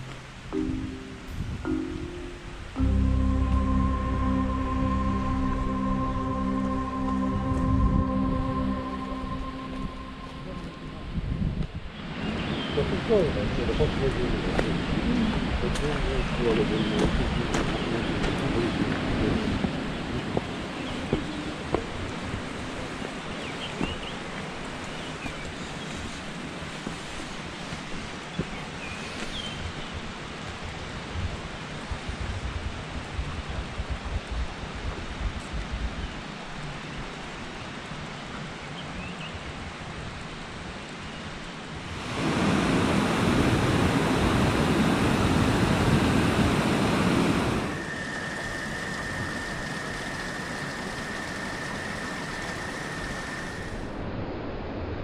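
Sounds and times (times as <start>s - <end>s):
steady high-pitched tone: 0.0s - 12.0s, 46.9s - 54.0s
wind gusts on microphone: 7.2s - 55.0s
faint hiss: 41.2s - 54.0s
water rushing over weir: 41.8s - 54.1s.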